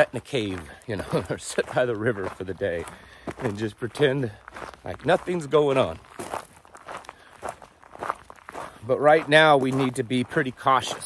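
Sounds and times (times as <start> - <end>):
footsteps on dirt road: 0.0 - 11.0.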